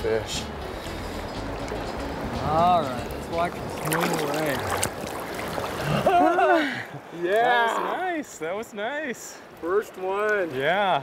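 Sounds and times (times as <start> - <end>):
river water rushing over stones: 1.6 - 6.2.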